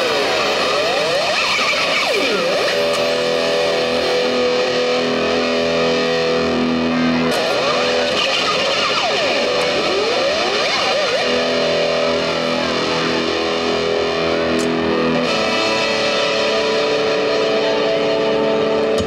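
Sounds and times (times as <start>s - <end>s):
electric guitar with effects: 0.0s - 19.0s.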